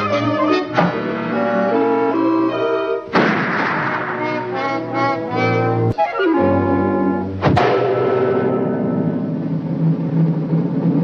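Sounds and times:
brass-led cartoon orchestra music: 0:00.0 - 0:11.0
cartoon rifle shot: 0:03.1 - 0:04.4.

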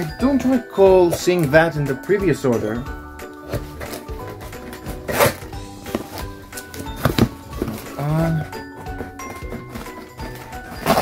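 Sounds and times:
background music: 0:00.0 - 0:11.0
cardboard parcel being torn open: 0:05.0 - 0:11.0.

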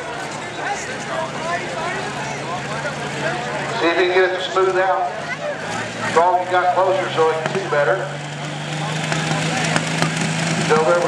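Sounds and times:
diesel engine running rough: 0:00.0 - 0:11.0.

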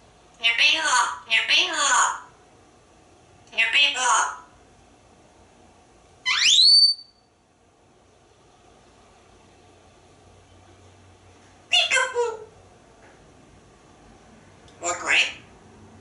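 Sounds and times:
parrot speech-like chatter: 0:00.4 - 0:02.3, 0:03.5 - 0:04.5, 0:11.7 - 0:12.6, 0:14.8 - 0:15.5
parrot rising whistle: 0:06.2 - 0:07.2.

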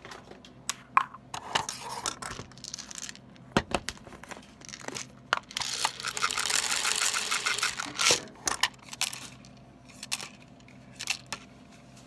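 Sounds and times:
tablets rattling on plastic tray: 0:02.1 - 0:03.2, 0:04.6 - 0:11.4.

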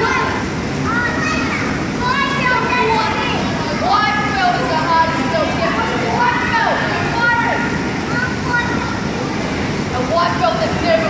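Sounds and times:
young children chattering: 0:00.0 - 0:11.0.

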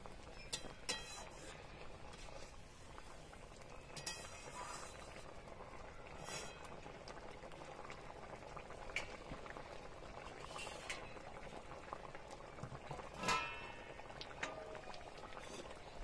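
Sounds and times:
curry bubbling in a wok: 0:00.0 - 0:16.0.

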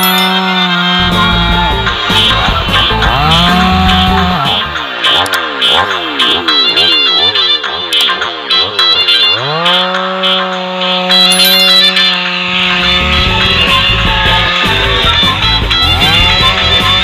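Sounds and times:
background music: 0:00.0 - 0:05.2, 0:11.2 - 0:17.0
chainsaw cutting log: 0:00.0 - 0:17.0.

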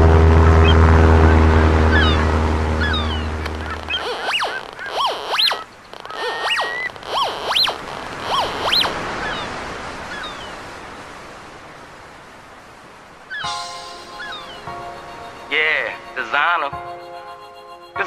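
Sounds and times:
gulls squawking: 0:00.5 - 0:10.7, 0:13.3 - 0:17.7
surf hissing: 0:01.3 - 0:16.7.

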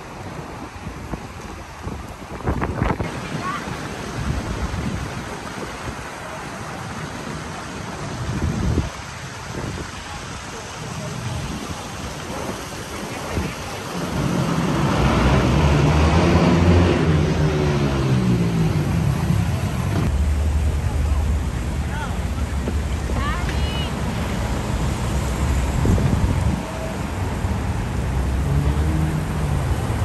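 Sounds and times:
wind and traffic hiss: 0:00.0 - 0:30.0
motor vehicle engine: 0:10.6 - 0:30.0.

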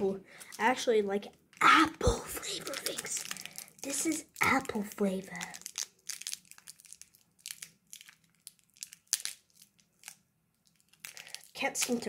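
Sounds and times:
candy wrapper crinkling: 0:00.3 - 0:12.0.

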